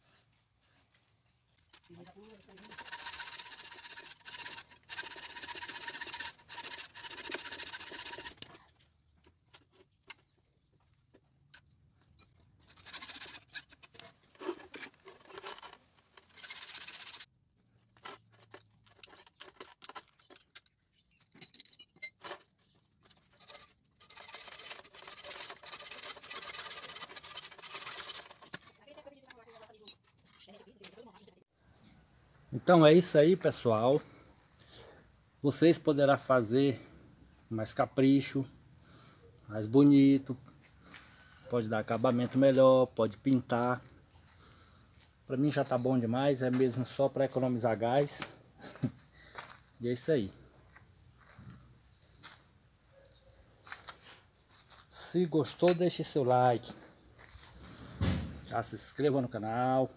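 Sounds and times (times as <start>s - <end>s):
hacksaw cutting steel wire: 1.7s - 8.5s, 12.6s - 17.3s, 23.0s - 28.8s.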